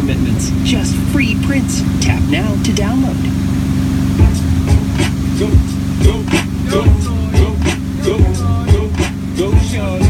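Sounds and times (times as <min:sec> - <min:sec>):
boat engine droning: 0:00.0 - 0:10.0
wake washing: 0:00.0 - 0:10.0
bass beats of song: 0:04.2 - 0:10.0.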